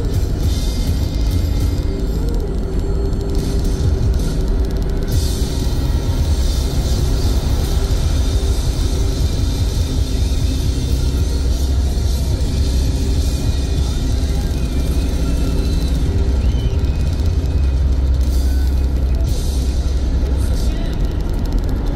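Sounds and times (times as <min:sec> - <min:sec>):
music playing: 0:00.0 - 0:21.9.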